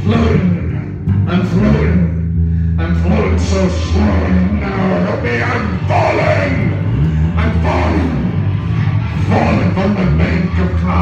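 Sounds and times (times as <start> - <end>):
deep bass line: 0.0 - 11.0
man singing into microphone: 2.8 - 8.2.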